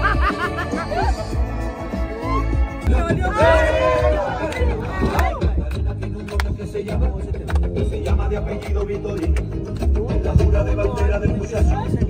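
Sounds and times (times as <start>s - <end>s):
people laughing: 0.0s - 1.6s
background music with bass beat: 0.0s - 12.0s.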